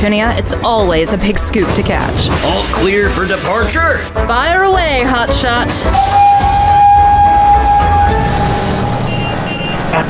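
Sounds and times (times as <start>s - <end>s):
train rumble and hiss: 1.6s - 4.2s
steam locomotive whistle: 5.8s - 9.6s.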